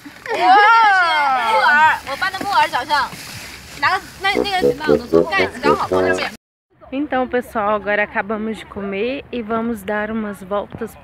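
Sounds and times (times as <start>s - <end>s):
people talking: 4.3s - 6.4s.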